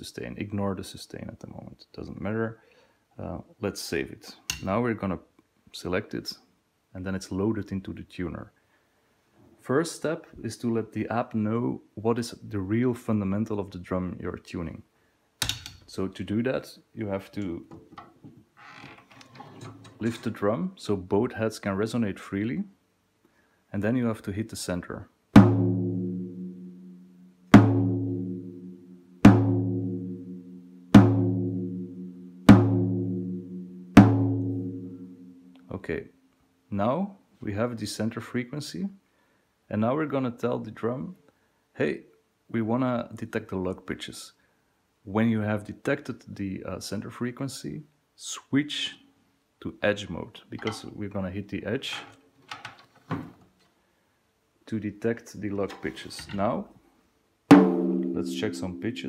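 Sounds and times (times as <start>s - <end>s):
tom drum struck with stick: 25.4s - 35.6s, 57.5s - 59.0s
soft handling knocks and clicks: 52.0s - 53.8s.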